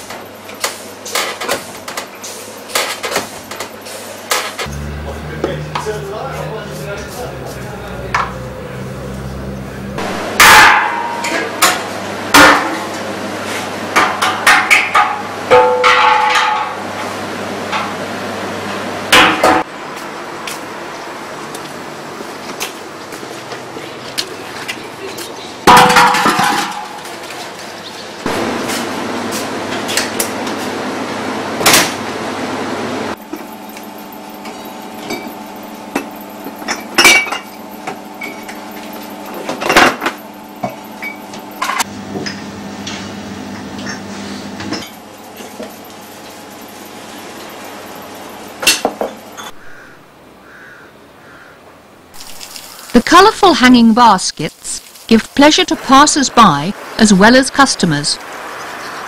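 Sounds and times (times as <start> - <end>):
hard objects knocking and clanking: 25.7 - 27.0.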